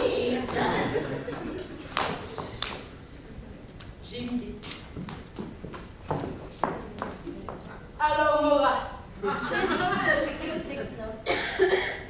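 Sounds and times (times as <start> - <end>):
woman speaking: 7.3 - 9.0, 9.9 - 11.3.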